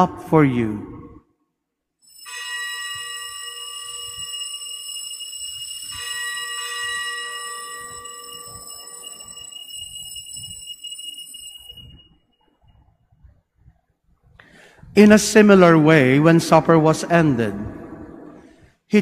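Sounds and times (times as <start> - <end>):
bell ringing: 2.0 - 12.7.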